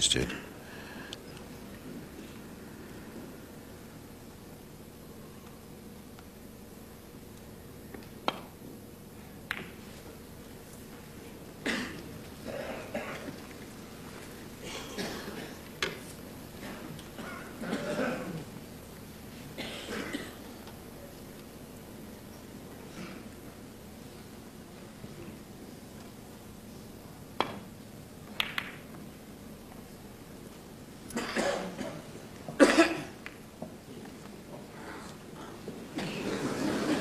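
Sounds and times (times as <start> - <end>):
balls colliding clicks: 7.9 - 8.6, 9.4 - 9.8, 27.4 - 29.1
audience coughing: 11.6 - 13.4, 14.6 - 15.7, 16.6 - 18.5, 19.6 - 20.5, 31.1 - 33.2, 34.7 - 37.0.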